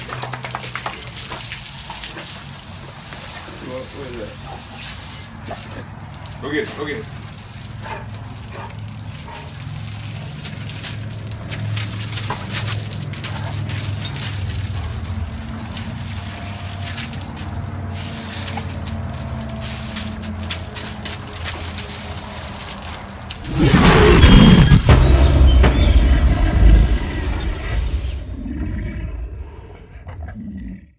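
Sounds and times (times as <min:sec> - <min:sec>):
hose spraying water onto gravel: 0:00.0 - 0:23.8
loud music with boom: 0:23.5 - 0:28.1.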